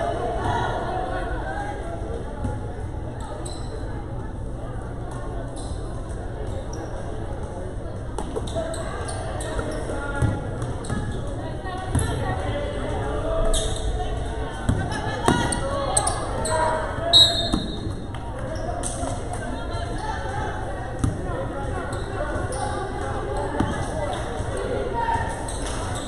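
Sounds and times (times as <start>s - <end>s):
chatter and calls of people: 0.0s - 26.0s
sneaker squeak: 3.2s - 3.9s, 5.5s - 6.0s, 6.6s - 7.1s, 8.3s - 12.2s, 13.5s - 14.0s, 14.6s - 19.0s, 21.8s - 24.5s, 25.3s - 26.0s.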